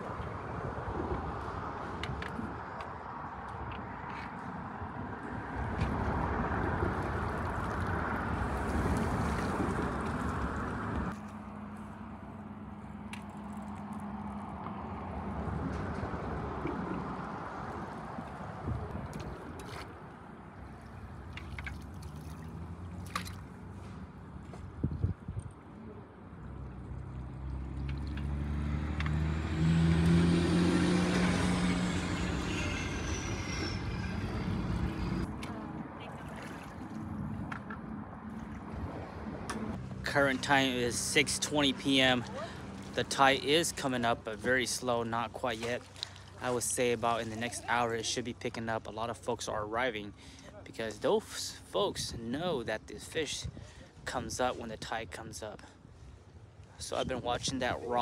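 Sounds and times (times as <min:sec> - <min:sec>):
engine droning with whine: 0:06.7 - 0:18.0, 0:25.7 - 0:36.0
river water flowing: 0:17.1 - 0:24.4, 0:34.6 - 0:48.7.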